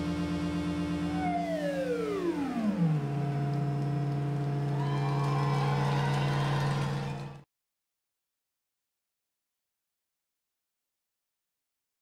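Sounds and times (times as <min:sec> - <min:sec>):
higher wavering synth tone: 0:00.0 - 0:05.0
synthesizer tone gliding down: 0:00.0 - 0:07.4.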